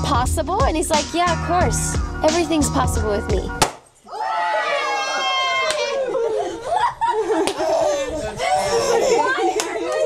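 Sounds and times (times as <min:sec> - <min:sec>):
people laughing: 0:04.8 - 0:10.0.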